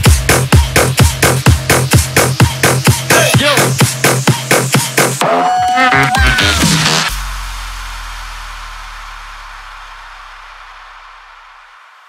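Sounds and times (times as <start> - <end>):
hissing reverb wash: 7.0 - 12.0
deep sustained bass note: 7.1 - 11.7.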